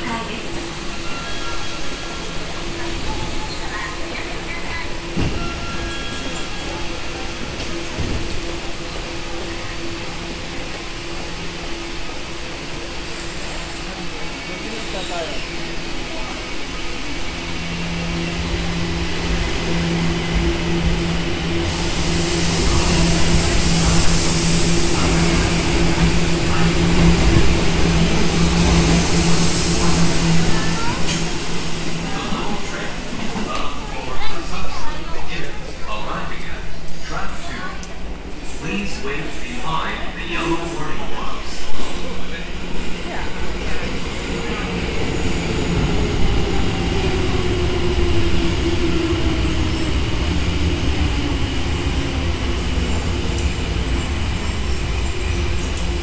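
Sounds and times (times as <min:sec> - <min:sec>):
train running noise: 0:00.0 - 0:56.0.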